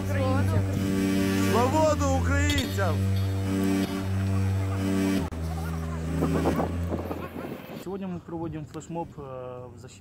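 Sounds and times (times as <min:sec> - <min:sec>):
people talking: 0:00.0 - 0:00.8, 0:01.4 - 0:03.0, 0:04.0 - 0:10.0
steady low drone: 0:00.0 - 0:07.8
sustained low tones: 0:00.0 - 0:07.8.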